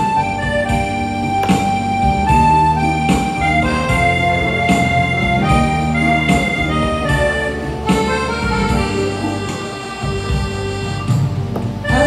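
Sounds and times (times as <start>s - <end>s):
karaoke backing track: 0.0s - 12.0s.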